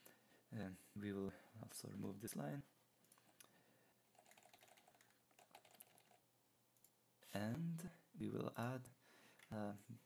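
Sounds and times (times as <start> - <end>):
keyboard typing: 4.1 - 6.2.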